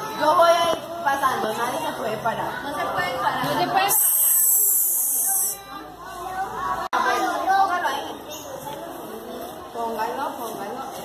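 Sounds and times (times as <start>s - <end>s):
young children chattering: 0.0s - 11.0s
loud high hiss: 3.9s - 5.6s.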